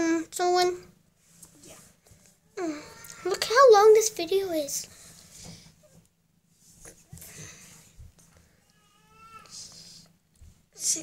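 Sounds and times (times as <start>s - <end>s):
soft rustling of kittens: 0.8s - 11.0s.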